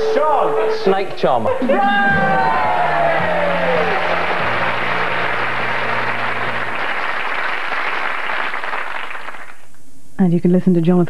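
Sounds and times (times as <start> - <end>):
audience applauding: 1.6 - 9.7.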